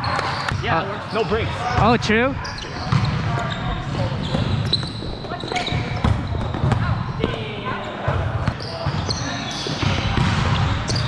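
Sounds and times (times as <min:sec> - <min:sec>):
sneakers squeaking: 0:00.0 - 0:11.0
volleyball being struck: 0:09.8 - 0:11.0.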